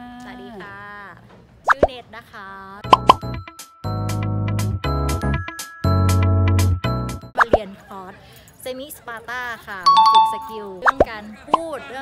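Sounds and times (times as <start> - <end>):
rising plop pop effects: 1.7 - 1.9, 2.9 - 3.3.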